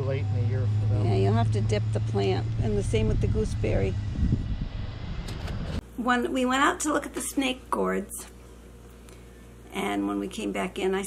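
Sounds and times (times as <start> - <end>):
low outdoor rumble: 0.0 - 8.8.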